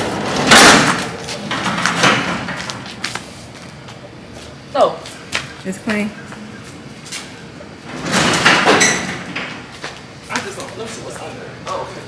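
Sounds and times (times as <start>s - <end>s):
garage door opening: 0.0s - 3.0s, 7.1s - 10.6s.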